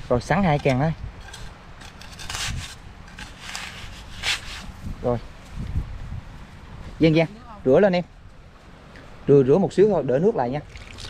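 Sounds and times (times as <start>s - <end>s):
metal trowel scraping wet sand: 0.3s - 4.8s.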